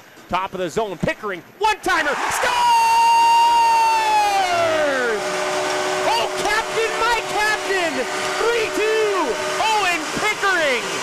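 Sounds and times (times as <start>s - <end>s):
crowd cheering and whooping: 2.1s - 9.6s
arena goal horn: 4.0s - 10.9s.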